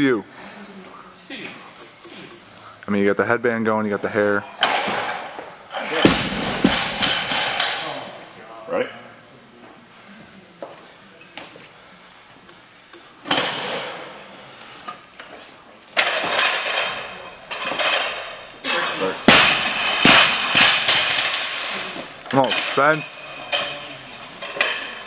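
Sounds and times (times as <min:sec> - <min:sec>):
barbell dropped onto platform: 0:05.9 - 0:07.8
barbell plates rattling: 0:05.9 - 0:08.0, 0:16.0 - 0:25.0.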